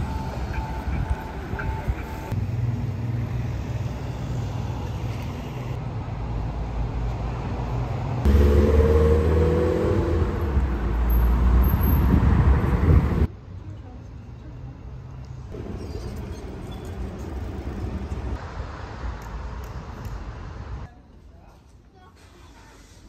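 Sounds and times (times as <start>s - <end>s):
heavy traffic rumble: 0.0s - 21.2s
quiet street ambience: 0.0s - 23.0s.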